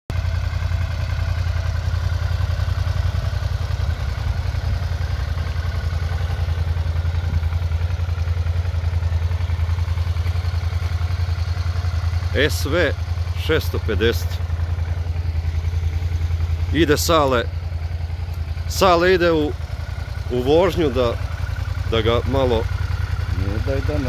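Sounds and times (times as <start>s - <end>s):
motorcycle engine idling: 0.1s - 24.0s.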